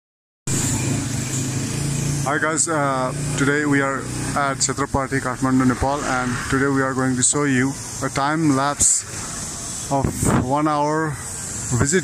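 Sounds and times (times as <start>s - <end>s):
motor scooter engine running: 0.5s - 8.4s
street traffic: 0.5s - 12.0s.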